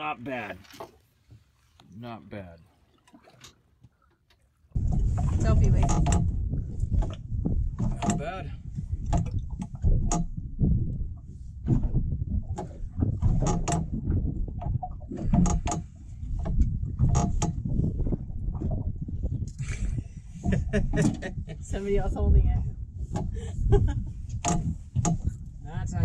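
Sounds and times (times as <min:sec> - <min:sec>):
boat hull rumbling: 0:00.0 - 0:26.0.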